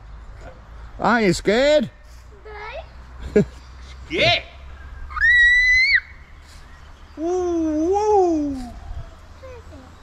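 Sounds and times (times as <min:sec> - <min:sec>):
child's wordless voice: 0:02.3 - 0:03.0, 0:09.3 - 0:10.0
child squealing: 0:05.1 - 0:06.2.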